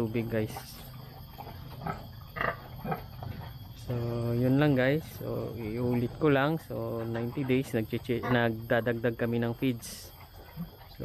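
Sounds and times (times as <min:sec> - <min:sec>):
pig grunting: 0:00.0 - 0:11.0.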